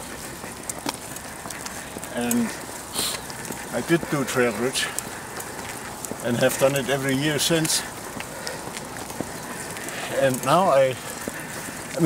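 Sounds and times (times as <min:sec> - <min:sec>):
bicycle rushing noise: 0:00.0 - 0:12.0
faint bicycle clicks: 0:00.0 - 0:12.0.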